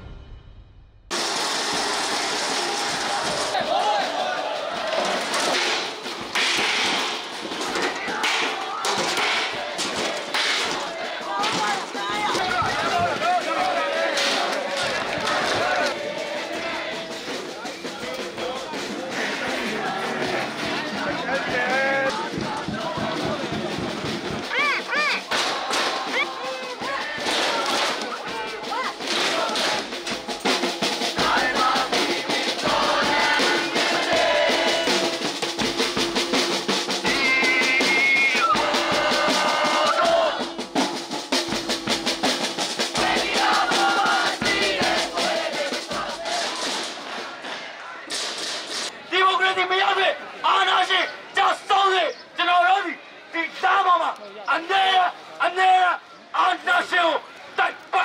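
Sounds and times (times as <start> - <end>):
steady drum beat: 1.1 - 49.0
voices singing: 2.1 - 52.4.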